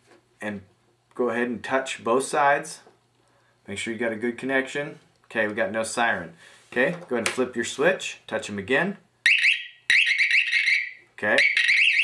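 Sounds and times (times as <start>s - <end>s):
warbling siren: 9.3s - 12.0s.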